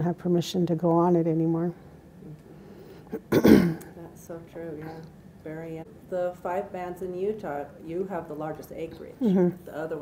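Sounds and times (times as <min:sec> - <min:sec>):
person clearing throat: 0:03.1 - 0:03.9.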